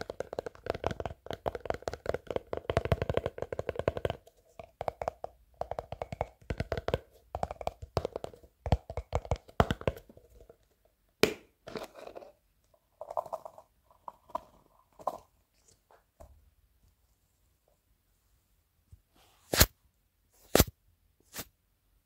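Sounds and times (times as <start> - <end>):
fingertips tapping plastic tub: 0.0 - 11.4.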